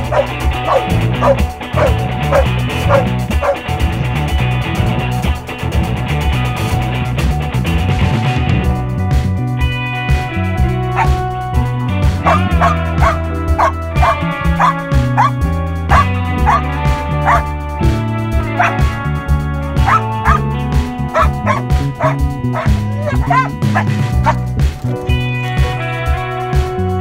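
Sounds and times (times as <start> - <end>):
dog barking: 0.0 - 3.6, 11.0 - 11.2, 12.2 - 17.5, 18.5 - 18.8, 19.8 - 20.4, 21.1 - 24.4
guitar music: 0.0 - 27.0.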